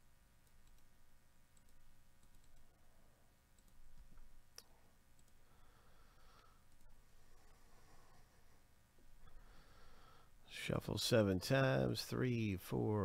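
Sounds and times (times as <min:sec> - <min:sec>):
computer mouse clicks: 0:00.4 - 0:00.9, 0:01.6 - 0:02.8, 0:03.6 - 0:05.4, 0:06.7 - 0:07.0.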